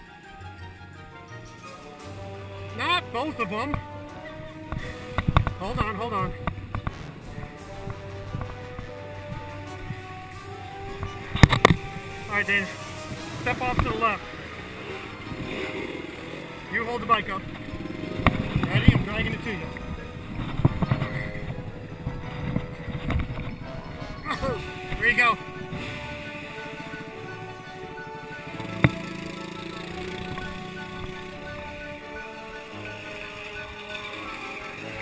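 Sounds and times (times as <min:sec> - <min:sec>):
background music: 0:00.0 - 0:35.0
dirt bike engine revving: 0:10.1 - 0:35.0.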